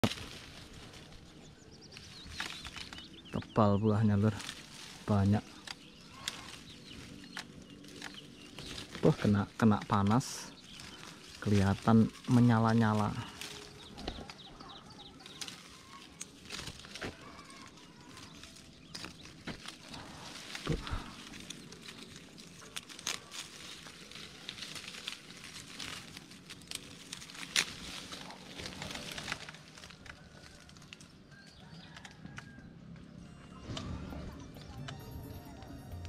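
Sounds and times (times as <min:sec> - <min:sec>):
twig snapping: 0:00.0 - 0:01.3, 0:01.9 - 0:32.6
leaves and twigs rustling: 0:00.0 - 0:36.0.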